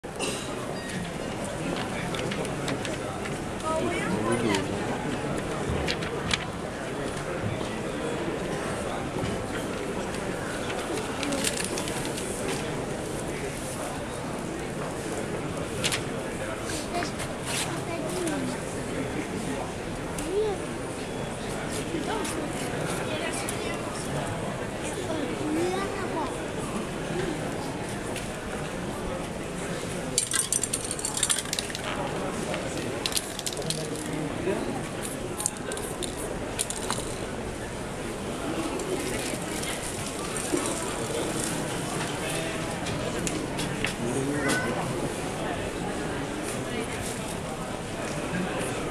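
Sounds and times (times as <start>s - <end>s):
people talking: 0.1s - 48.9s.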